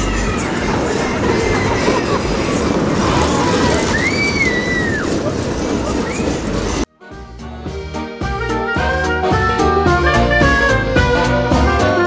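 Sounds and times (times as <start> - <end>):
fairground voices: 0.0 - 6.9
high gliding squeals: 0.0 - 6.9
roller coaster cars rattling on track: 0.0 - 6.9.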